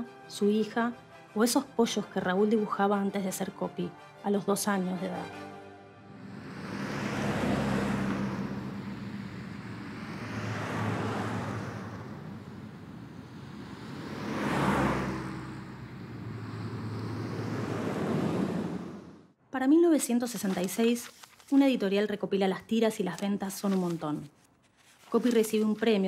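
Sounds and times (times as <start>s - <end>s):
cars passing: 5.0s - 19.4s.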